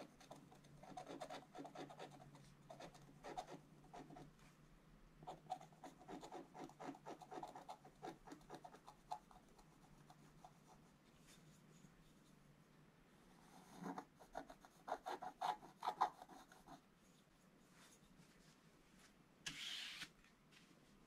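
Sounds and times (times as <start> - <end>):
stylus scraping scratch-art paper: 0.0 - 4.3, 5.3 - 10.8, 13.5 - 16.8.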